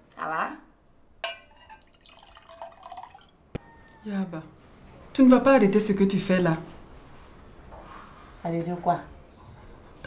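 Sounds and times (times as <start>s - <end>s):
liquid trickling into glass: 1.6s - 4.0s.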